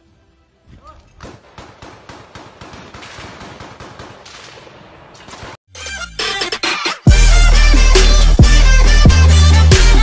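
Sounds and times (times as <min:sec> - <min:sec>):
rapid small-arms gunfire: 0:01.2 - 0:05.6.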